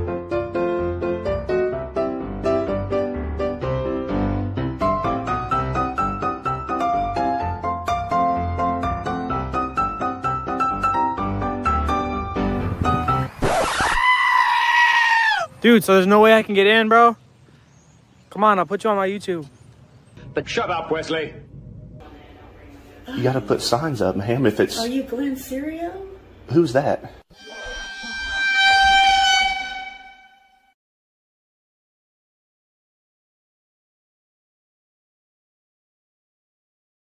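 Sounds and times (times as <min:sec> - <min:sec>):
long high-pitched cry: 0:13.8 - 0:15.5, 0:27.3 - 0:30.6
steady horn note: 0:27.3 - 0:30.7.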